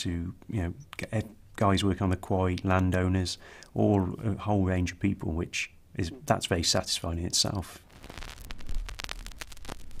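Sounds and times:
electronic crackle: 0:07.7 - 0:10.0.

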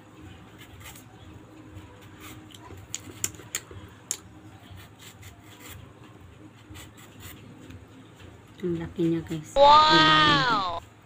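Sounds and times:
knife paring mango skin: 0:00.4 - 0:01.2, 0:04.6 - 0:07.7.

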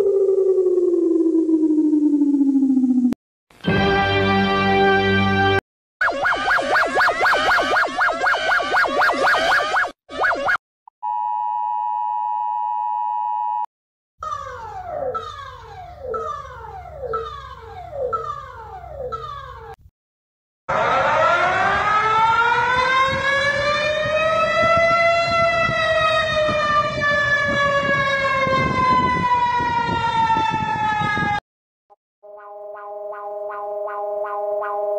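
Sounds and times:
siren wail: 0:00.0 - 0:03.2, 0:06.0 - 0:13.6, 0:14.4 - 0:19.2, 0:20.7 - 0:31.4, 0:32.3 - 0:34.9
warbling alarm: 0:00.0 - 0:03.2, 0:06.0 - 0:13.6, 0:14.4 - 0:19.3, 0:32.2 - 0:34.9
falling electronic sweeps: 0:06.0 - 0:10.6
steady electronic tone: 0:06.0 - 0:12.6, 0:32.2 - 0:34.9.

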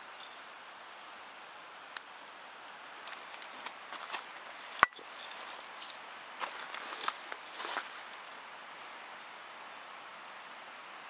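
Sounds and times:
footsteps crunching on gravel and snow: 0:03.0 - 0:09.4.

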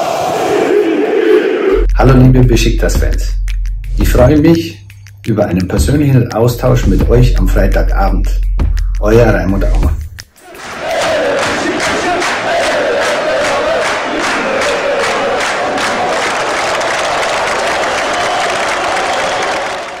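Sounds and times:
football crowd chanting: 0:00.0 - 0:01.8, 0:10.4 - 0:20.0
sharp beats: 0:01.7 - 0:16.9.

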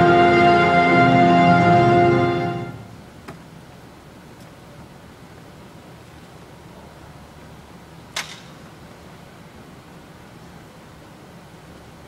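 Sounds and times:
low hum of hall: 0:00.0 - 0:12.0
sharp click: 0:08.2 - 0:08.6.

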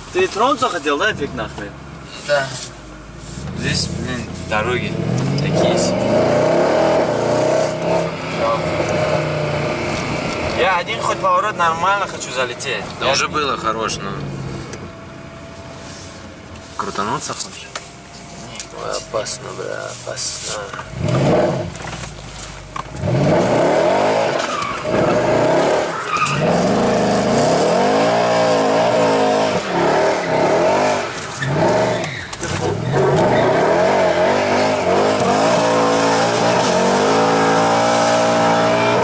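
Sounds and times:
car engine revving hard: 0:03.3 - 0:14.8, 0:20.9 - 0:21.9, 0:22.9 - 0:39.0
tyres spinning and squealing: 0:23.0 - 0:39.0.

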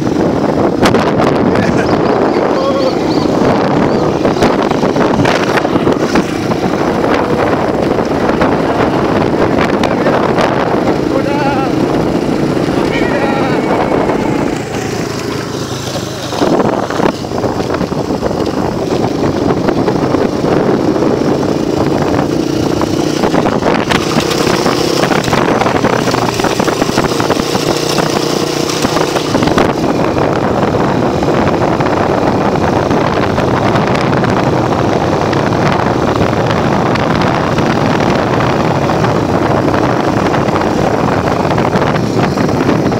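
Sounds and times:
motorcycle engine running: 0:00.0 - 0:42.9
wind on microphone: 0:00.0 - 0:42.9.

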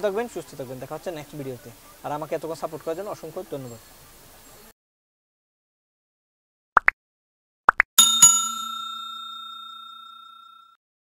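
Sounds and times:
bright bell ding: 0:08.0 - 0:10.8.

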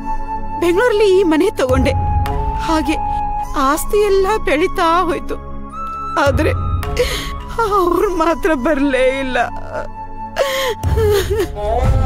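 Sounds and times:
dramatic background music: 0:00.0 - 0:12.0
gasping breath: 0:07.0 - 0:07.5, 0:10.4 - 0:11.7
woman sobbing: 0:07.0 - 0:12.0.

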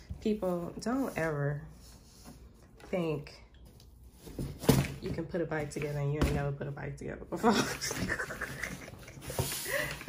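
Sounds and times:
woman laughing breathily: 0:07.9 - 0:10.0.

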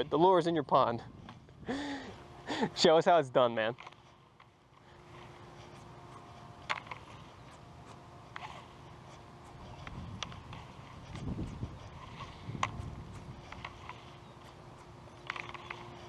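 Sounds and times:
faint steady hum: 0:00.0 - 0:16.0
low rumbling handling noise: 0:03.6 - 0:16.0.

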